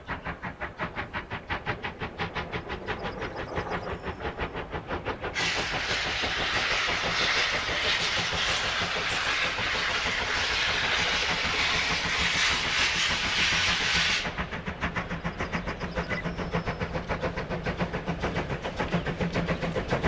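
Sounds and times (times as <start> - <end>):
steam hissing: 0.0 - 20.0
steam locomotive exhaust chuffs: 0.0 - 20.0.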